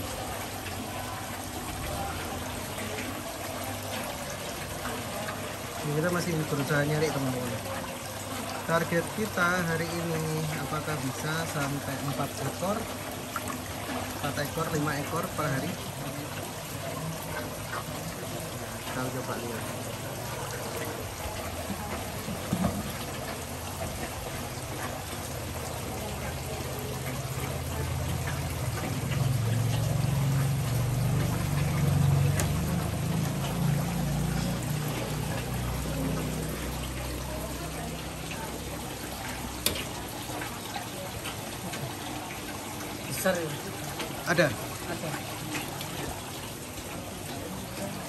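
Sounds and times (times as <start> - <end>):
water trickling and sloshing: 0.0 - 48.0.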